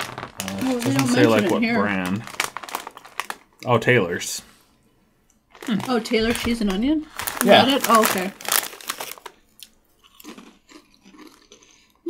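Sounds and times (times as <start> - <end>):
chewing crisps: 0.0 - 3.8, 5.4 - 12.0.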